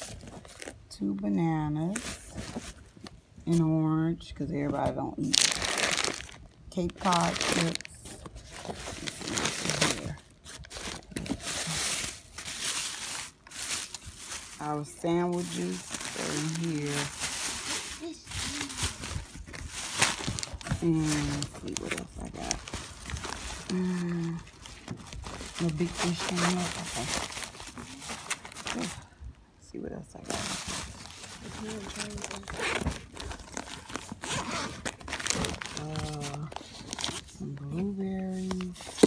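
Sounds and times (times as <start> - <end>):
plastic bags crinkling: 5.1 - 29.1, 30.2 - 39.0
person's short voiced sound: 17.8 - 19.0.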